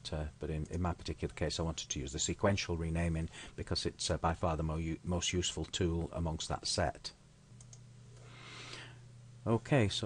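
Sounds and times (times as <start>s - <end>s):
low electrical hum: 0.0s - 10.0s
faint clicks: 7.6s - 8.3s.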